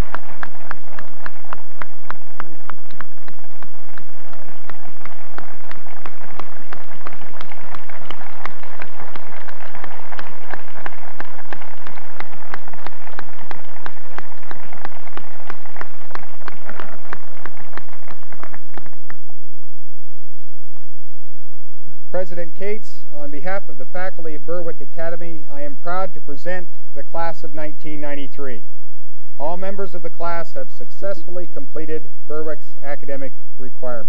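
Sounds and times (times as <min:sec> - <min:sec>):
large crowd applauding: 0:00.0 - 0:19.2.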